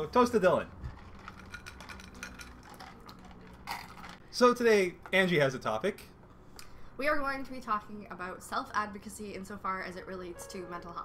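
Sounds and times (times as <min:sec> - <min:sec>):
ice cubes clinking in glass: 0:00.8 - 0:04.2
people sipping drinks: 0:00.8 - 0:04.2.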